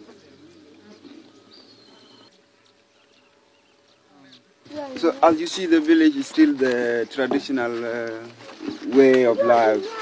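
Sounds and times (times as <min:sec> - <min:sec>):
faint bird calls: 0:08.3 - 0:10.0.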